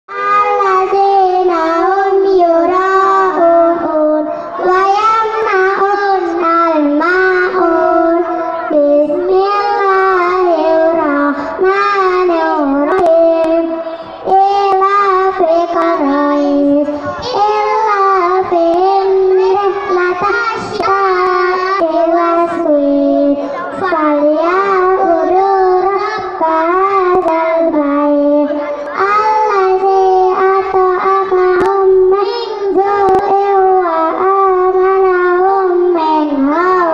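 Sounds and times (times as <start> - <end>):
children singing into microphones: 0.1 - 36.9.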